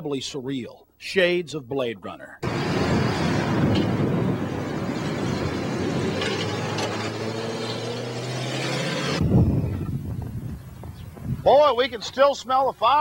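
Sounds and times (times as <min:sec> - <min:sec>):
engine hum: 0:02.4 - 0:09.3
road and wind noise from car: 0:02.4 - 0:11.6.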